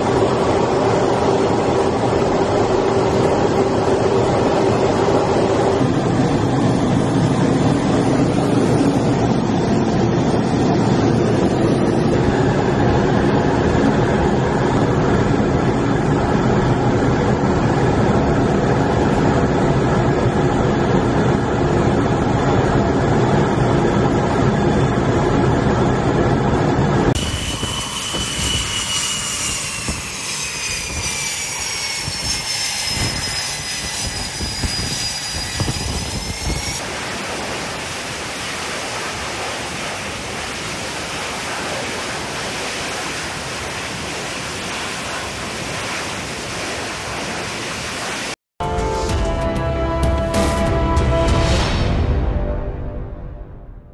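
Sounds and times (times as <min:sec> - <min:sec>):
jet aircraft drone: 0:00.0 - 0:51.2
jet turbine whine: 0:00.0 - 0:53.0.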